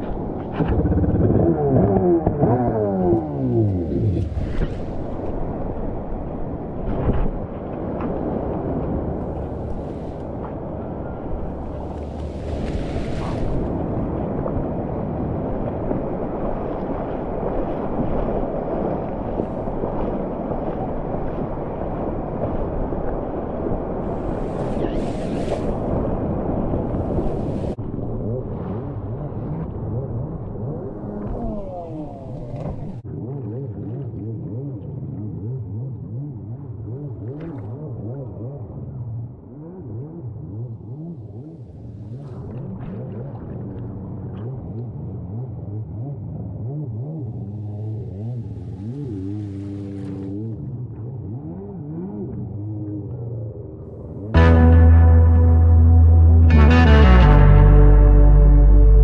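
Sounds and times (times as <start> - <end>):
low hum: 52.6 - 59.0.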